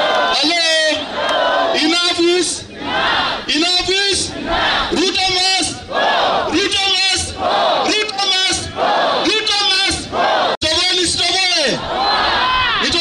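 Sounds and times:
man shouting through microphone: 0:00.0 - 0:02.7, 0:03.4 - 0:13.0
crowd shouting back: 0:00.0 - 0:13.0.

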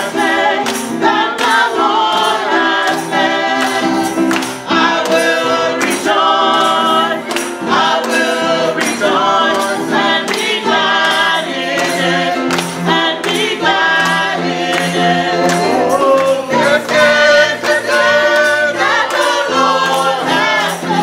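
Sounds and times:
gospel choir singing: 0:00.0 - 0:21.0.

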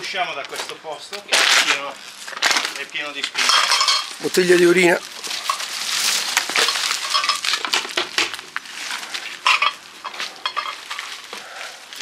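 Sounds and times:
footsteps crunching on litter: 0:00.3 - 0:12.0
rustling vines: 0:01.2 - 0:12.0
debris clinking: 0:03.4 - 0:08.0, 0:09.4 - 0:11.2.

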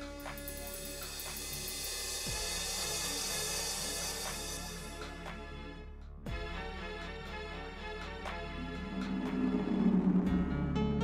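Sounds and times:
score music with drums and cymbals: 0:00.0 - 0:10.9
low downward sweep: 0:08.3 - 0:11.0.

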